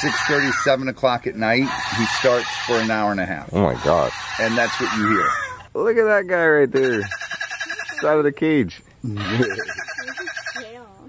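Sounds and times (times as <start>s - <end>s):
people talking: 0.0s - 11.0s
animal's rapid pulsing call: 6.8s - 8.2s, 9.3s - 10.8s
person laughing: 9.0s - 9.8s.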